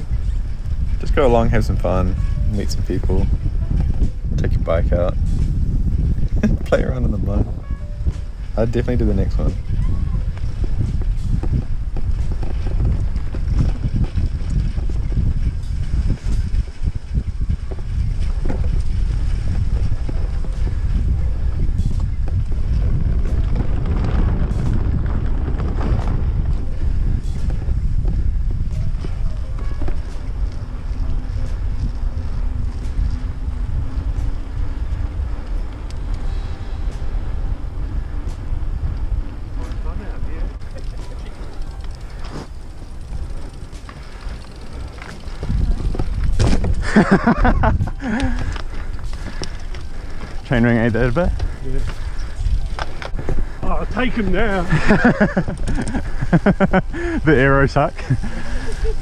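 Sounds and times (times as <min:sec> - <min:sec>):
bike rolling noise: 0:00.0 - 0:59.0
wind buffeting microphone: 0:00.0 - 0:59.0.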